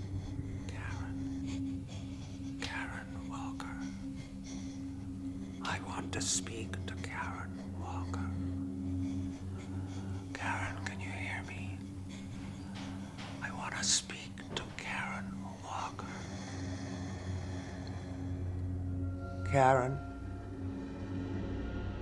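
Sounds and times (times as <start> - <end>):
low steady drone: 0.0 - 22.0
woman whispering: 0.6 - 4.2, 5.6 - 9.4, 10.2 - 16.3.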